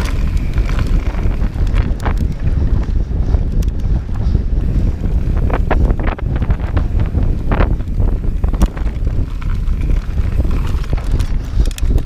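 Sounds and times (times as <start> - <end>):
bike knocks and rattles: 0.0 - 12.0
wind buffeting microphone: 0.0 - 12.0.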